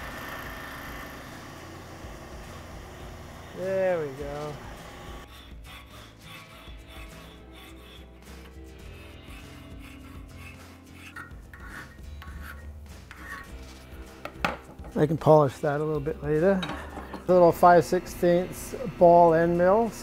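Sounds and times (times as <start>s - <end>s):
file stroking steel: 2.8s - 13.9s.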